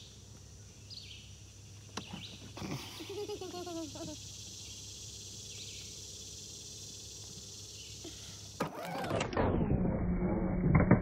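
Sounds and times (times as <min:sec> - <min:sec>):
insects hissing: 0:00.0 - 0:08.8
low hum: 0:09.2 - 0:11.0.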